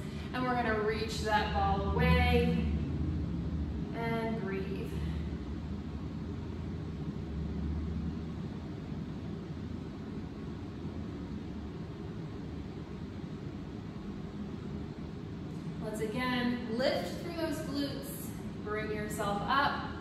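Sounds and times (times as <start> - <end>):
low background rumble: 0.0 - 20.0.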